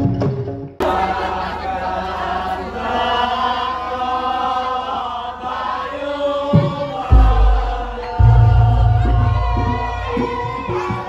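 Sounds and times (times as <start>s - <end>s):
chant-style singing: 0.8s - 11.0s.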